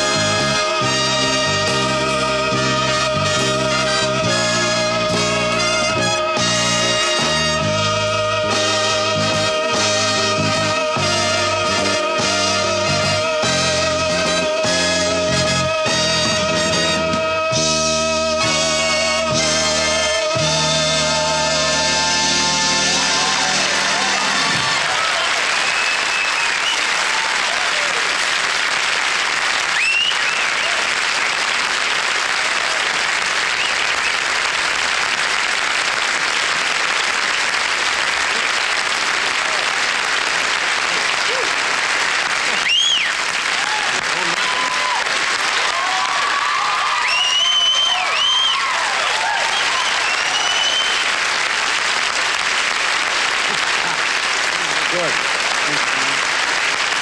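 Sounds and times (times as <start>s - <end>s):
audience applauding: 0.0s - 57.0s
whoops and whistles: 25.7s - 27.0s, 29.8s - 30.7s, 42.5s - 43.2s, 47.0s - 48.8s, 49.4s - 51.1s.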